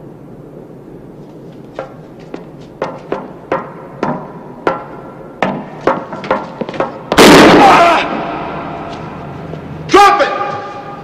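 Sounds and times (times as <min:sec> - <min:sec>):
footsteps on metal stairs: 0:01.5 - 0:07.2
sharp bang with ringing: 0:07.1 - 0:08.5
loud bang: 0:07.1 - 0:09.2.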